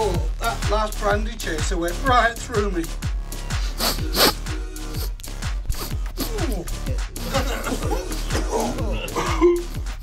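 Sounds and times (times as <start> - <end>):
electronic dance music: 0.0 - 10.0
cartoon fart sound effect: 3.8 - 4.4.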